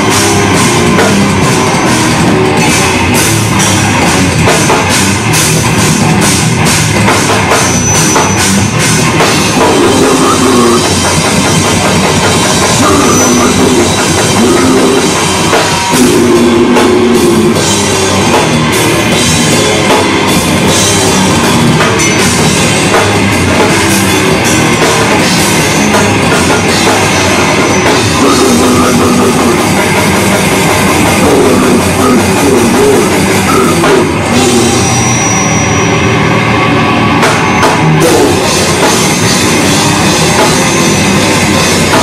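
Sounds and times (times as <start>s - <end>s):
bass guitar: 0.0s - 42.0s
distorted electric guitars: 0.0s - 42.0s
pounding drum kit: 0.0s - 42.0s.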